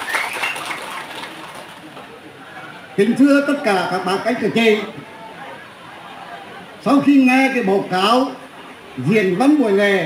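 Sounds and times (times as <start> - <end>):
audience applause: 0.0 - 1.9.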